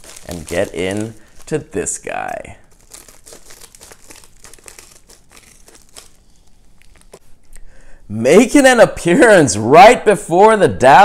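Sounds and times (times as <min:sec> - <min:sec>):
plastic mailer crinkling: 0:00.0 - 0:07.2
scissors cutting plastic: 0:02.7 - 0:07.2.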